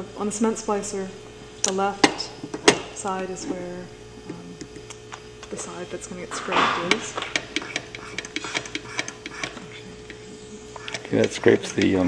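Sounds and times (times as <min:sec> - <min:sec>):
faint steady hum: 0:00.0 - 0:12.0
scraper clicking and scratching film: 0:06.8 - 0:12.0.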